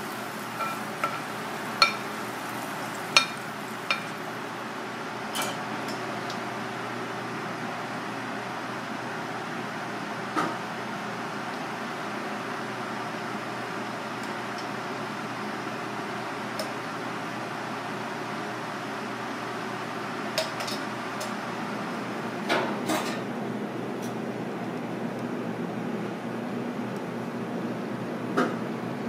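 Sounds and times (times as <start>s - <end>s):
utensils and dishes clinking: 0.0s - 2.2s, 3.0s - 4.2s
kitchen ventilation hum: 0.0s - 29.0s.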